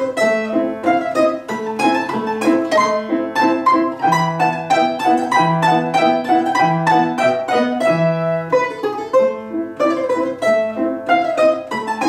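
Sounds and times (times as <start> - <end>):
piano accompaniment: 0.0 - 12.0
plucked string instrument melody: 0.0 - 12.0.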